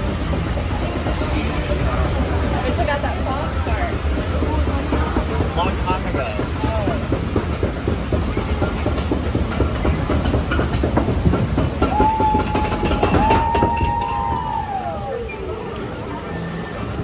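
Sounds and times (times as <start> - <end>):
conveyor lift clacking: 0.0 - 17.0.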